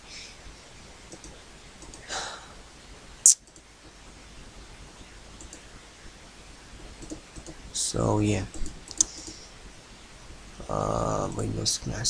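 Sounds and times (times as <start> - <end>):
low background hum: 0.0 - 12.0
computer mouse click: 1.1 - 2.1, 3.3 - 3.7, 5.4 - 5.7, 7.0 - 7.6, 8.5 - 9.4
faint ticks: 1.1 - 2.1, 7.0 - 7.6, 8.5 - 9.5.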